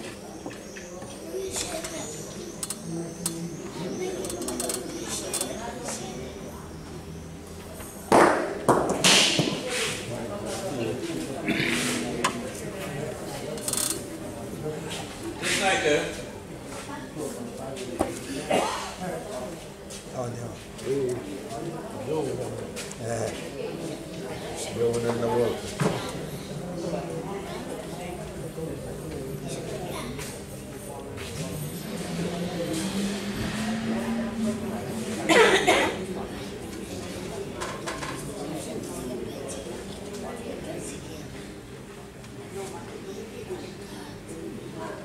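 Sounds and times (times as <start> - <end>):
murmur of voices: 0.0 - 45.0.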